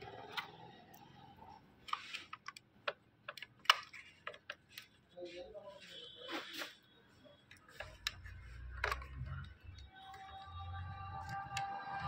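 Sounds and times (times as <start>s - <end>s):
plastic scrape: 1.8s - 2.6s, 7.7s - 10.2s.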